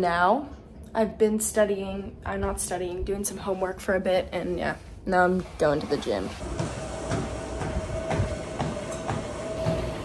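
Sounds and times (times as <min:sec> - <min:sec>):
steady hum: 0:06.3 - 0:10.0
mechanical rumble: 0:06.4 - 0:10.0.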